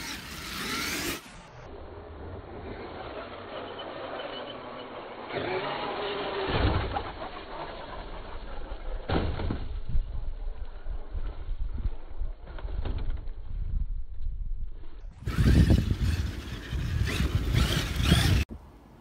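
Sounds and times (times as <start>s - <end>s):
electric motor whine: 0.0s - 7.6s, 15.2s - 18.5s
tyres scrabbling on dirt: 15.2s - 18.4s.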